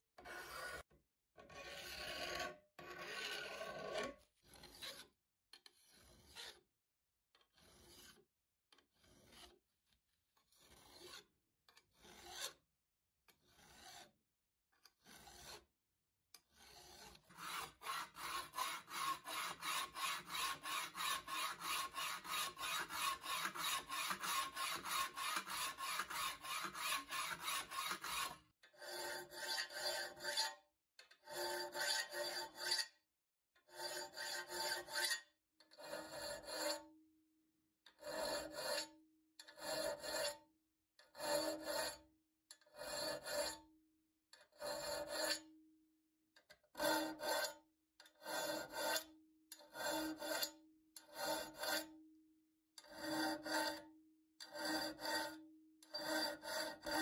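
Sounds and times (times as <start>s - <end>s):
round file strokes on blade: 0.2s - 0.8s, 1.5s - 6.7s, 7.4s - 8.3s, 8.9s - 9.6s, 10.5s - 12.7s, 13.3s - 14.2s, 15.0s - 15.7s, 16.4s - 30.6s, 31.2s - 33.0s, 33.7s - 36.9s, 38.0s - 38.9s, 39.5s - 40.4s, 41.1s - 42.1s, 42.7s - 43.6s, 44.4s - 45.5s, 46.8s - 47.6s, 48.2s - 49.1s, 49.7s - 52.0s, 52.8s - 53.8s, 54.5s - 57.0s
file scraping on steel: 0.2s - 6.7s, 7.4s - 12.7s, 13.3s - 14.2s, 14.8s - 15.8s, 16.4s - 33.0s, 33.6s - 37.0s, 37.8s - 43.7s, 44.4s - 45.6s, 46.4s - 52.0s, 52.8s - 57.0s.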